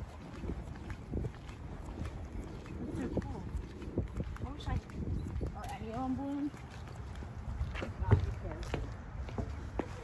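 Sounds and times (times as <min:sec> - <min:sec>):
footsteps on paved path: 0:00.0 - 0:10.0.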